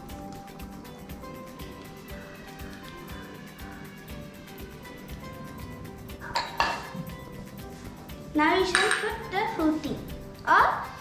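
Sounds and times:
background music with steady beat: 0.0s - 11.0s
metal cooking pan clattering: 6.2s - 7.0s.

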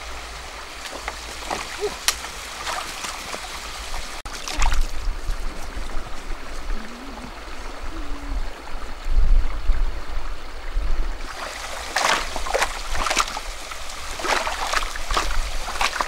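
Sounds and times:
stream trickling over stones: 0.0s - 16.0s.

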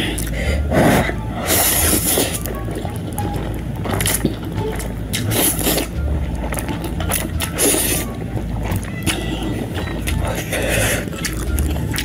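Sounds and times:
person slurping and chewing: 0.0s - 12.0s
steady low hum: 0.0s - 12.0s.

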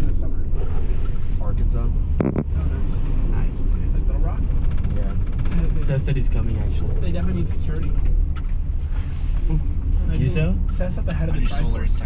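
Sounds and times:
gondola cabin rumble: 0.0s - 12.0s.

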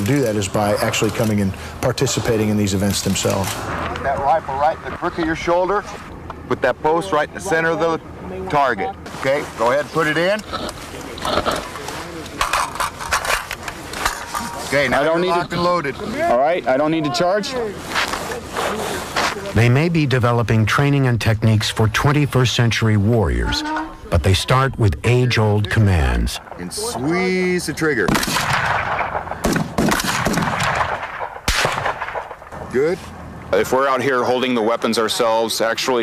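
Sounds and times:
rifle shots echoing: 28.0s - 32.6s.

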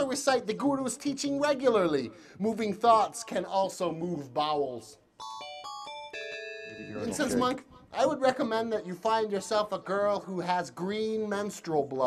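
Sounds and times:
electronic chime jingle: 5.2s - 7.5s.

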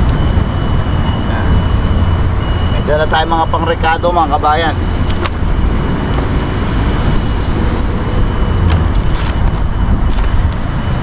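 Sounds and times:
low outdoor rumble: 0.0s - 11.0s.

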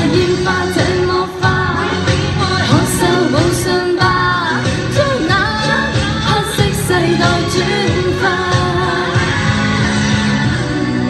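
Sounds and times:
woman singing into microphone: 0.0s - 10.7s
amplified pop accompaniment: 0.0s - 11.0s.

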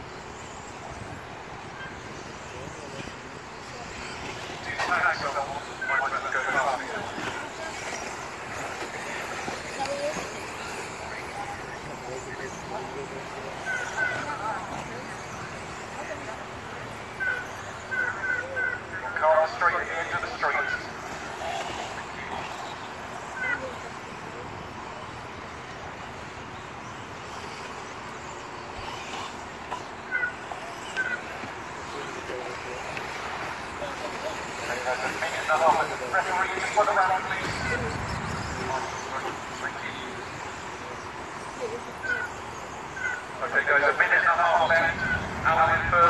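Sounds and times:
faint voices: 0.0s - 46.0s
radio-controlled cars running: 0.0s - 46.0s.

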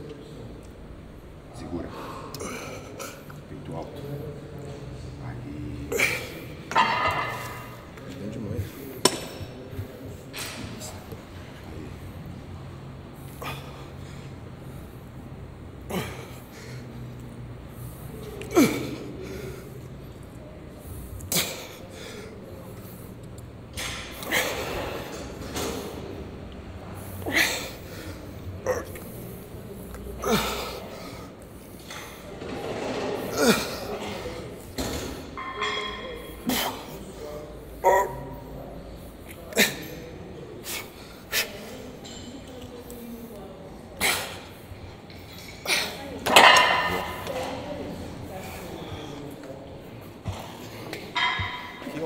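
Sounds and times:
faint voices: 0.0s - 52.0s
metal gym weights clanking: 34.8s - 36.7s, 51.1s - 52.0s.

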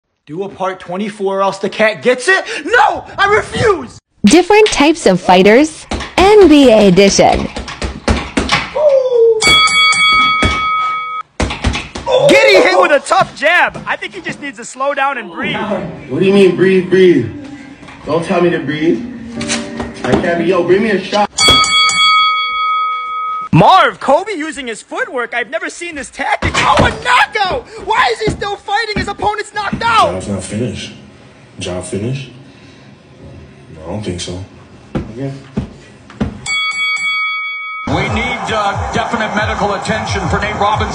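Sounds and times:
ringing multi-pitch tone: 9.4s - 11.2s, 21.4s - 23.5s.

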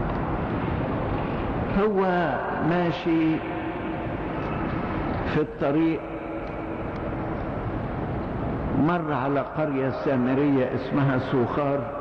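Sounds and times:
steady hiss and rumble: 0.0s - 12.0s.

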